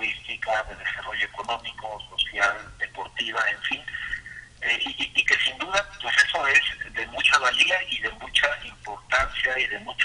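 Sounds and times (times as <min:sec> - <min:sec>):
man talking over telephone: 0:00.0 - 0:10.0.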